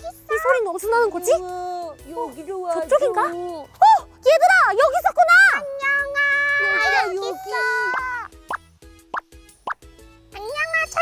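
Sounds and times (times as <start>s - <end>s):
soft background music: 0.0s - 11.0s
cartoon bloop pops: 8.4s - 9.8s.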